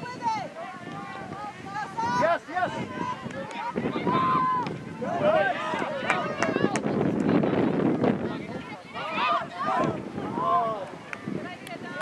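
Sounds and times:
voices calling and shouting: 0.0s - 12.0s.

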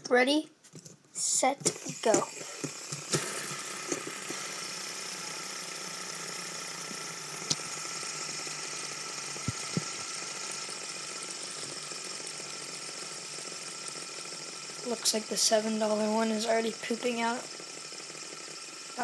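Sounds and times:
fidget spinners whirring: 0.2s - 19.0s.

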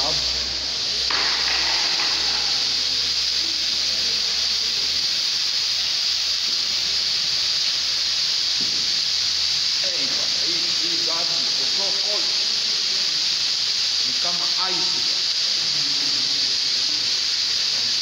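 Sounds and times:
fire extinguishers hissing: 0.0s - 18.0s.

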